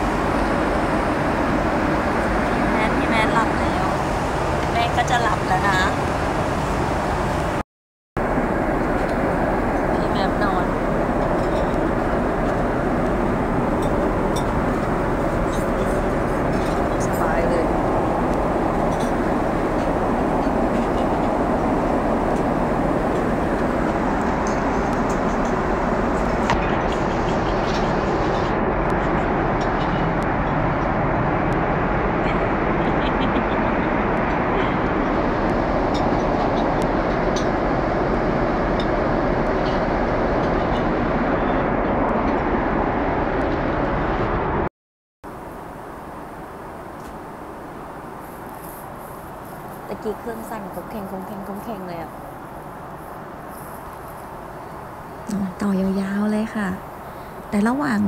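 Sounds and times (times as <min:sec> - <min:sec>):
airflow rush: 0:00.0 - 0:07.6, 0:08.2 - 0:44.7, 0:45.3 - 0:58.0
airliner engine noise: 0:00.0 - 0:07.6, 0:08.2 - 0:58.0.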